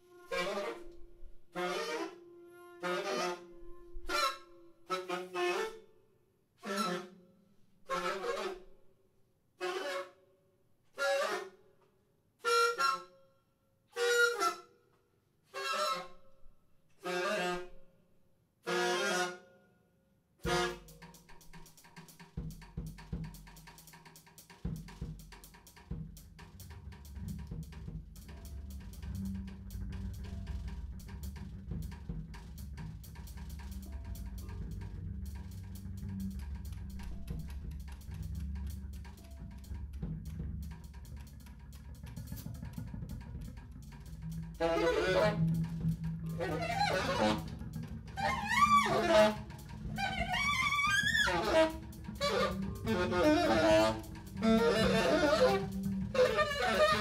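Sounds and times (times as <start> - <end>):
wind instrument blasts: 0.0 - 5.8, 7.9 - 8.6, 12.4 - 13.1, 13.9 - 14.7, 17.0 - 17.8, 20.4 - 22.8, 43.9 - 57.0
drum kit groove with cymbals: 20.4 - 57.0
electric bass: 26.2 - 57.0.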